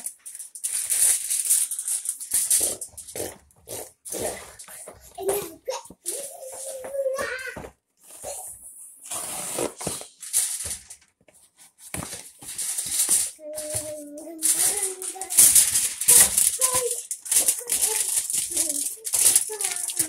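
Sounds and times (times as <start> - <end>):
rustling and rattling handling noise: 0.0 - 8.4, 9.1 - 20.0
child calling out: 5.2 - 7.6.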